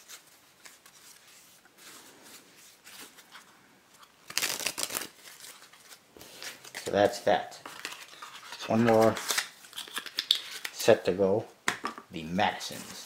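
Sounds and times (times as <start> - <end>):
playing cards rustling: 0.0 - 11.0.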